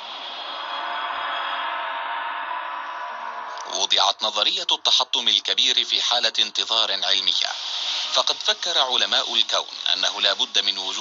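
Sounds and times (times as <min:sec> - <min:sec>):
ambient drone with held tones: 0:00.0 - 0:04.5.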